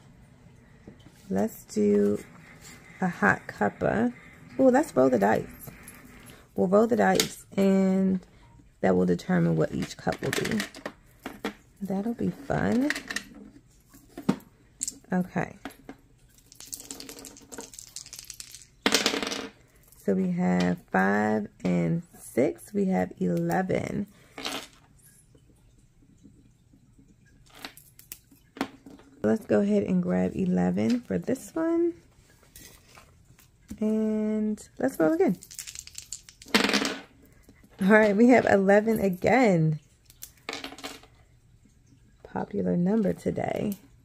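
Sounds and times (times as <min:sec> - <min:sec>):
dice rattling in hand: 0:16.4 - 0:19.5, 0:35.3 - 0:37.0
dice clattering on table: 0:16.4 - 0:19.6, 0:24.4 - 0:24.8, 0:35.3 - 0:37.1, 0:40.1 - 0:41.1.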